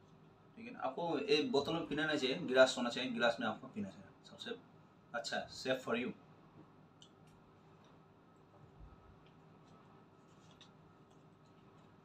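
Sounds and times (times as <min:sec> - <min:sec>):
faint room hum: 0:00.0 - 0:12.0
soft clicks and scraping from eating: 0:06.6 - 0:12.0.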